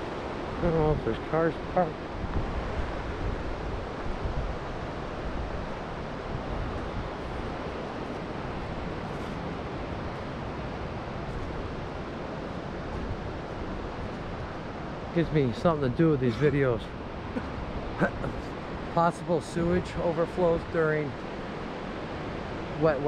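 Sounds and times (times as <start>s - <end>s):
creek flowing: 0.0s - 23.0s
wind buffeting microphone: 0.0s - 23.0s.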